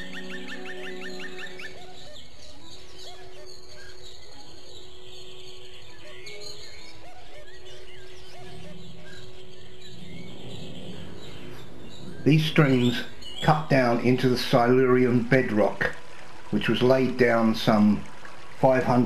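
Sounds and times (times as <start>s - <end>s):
birds chirping: 0.0s - 19.0s
soft background music: 0.0s - 19.0s.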